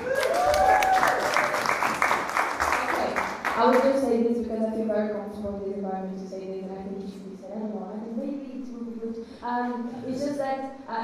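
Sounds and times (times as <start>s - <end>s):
audience applauding: 0.0s - 4.1s.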